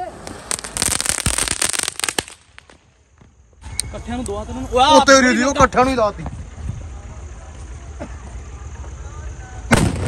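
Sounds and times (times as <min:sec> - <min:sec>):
firecracker bang: 0:09.7 - 0:10.0.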